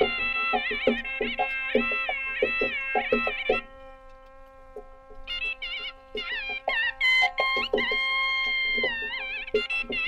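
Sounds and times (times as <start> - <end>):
drum strokes: 0.0 - 3.8, 4.7 - 10.0
reed instrument melody: 0.0 - 10.0.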